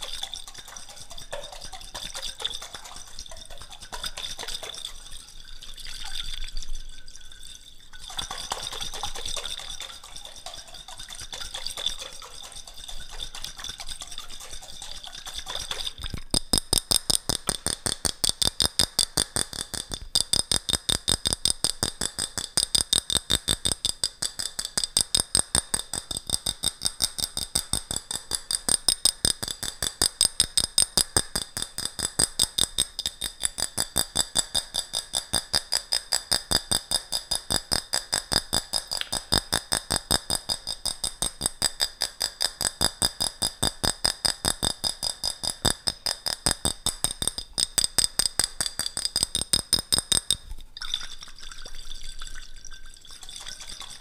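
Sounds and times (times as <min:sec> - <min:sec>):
fingers tapping on glass jar: 0:00.0 - 0:05.2, 0:07.9 - 0:50.7.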